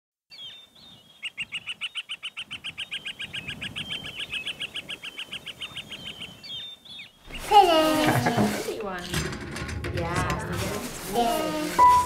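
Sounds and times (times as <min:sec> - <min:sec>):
bird chirps: 0:00.3 - 0:07.5.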